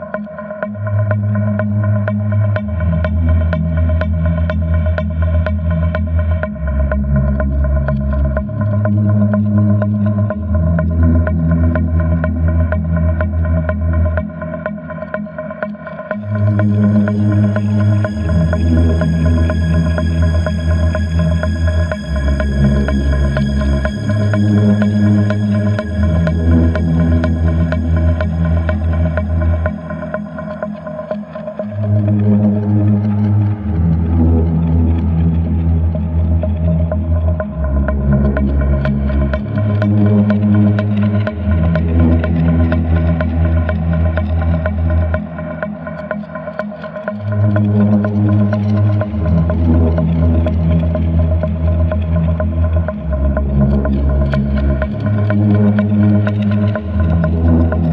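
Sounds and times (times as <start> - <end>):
deep synth bass: 0.0 - 57.9
mid-pitched drone: 0.0 - 57.9.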